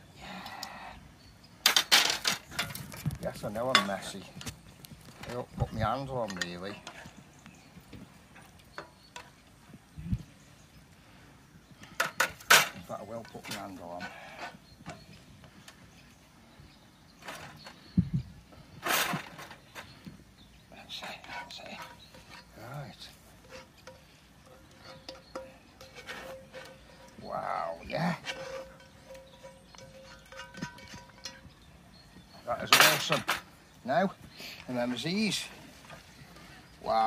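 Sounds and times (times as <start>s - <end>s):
metal spoon scraping skillet: 12.0s - 15.0s, 21.2s - 32.0s.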